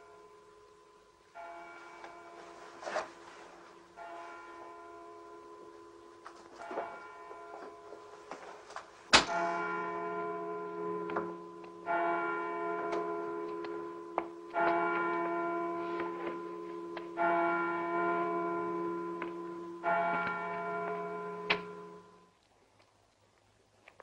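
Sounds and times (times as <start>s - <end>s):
bell tolling: 9.2s - 22.3s.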